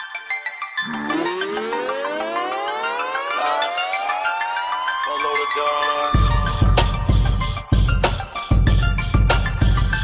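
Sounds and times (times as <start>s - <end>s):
hip-hop backing track: 0.0s - 10.0s
siren wail rising in pitch: 0.8s - 6.1s.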